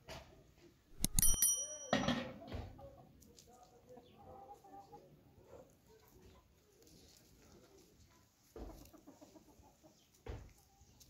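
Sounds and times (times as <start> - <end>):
high metallic ringing: 1.0 - 2.4
metal pot clanking: 1.0 - 2.4.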